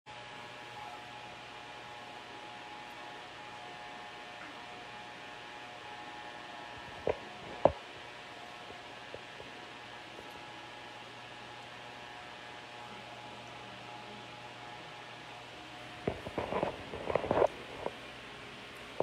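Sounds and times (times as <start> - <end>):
hair clipper humming: 0.1 - 18.1.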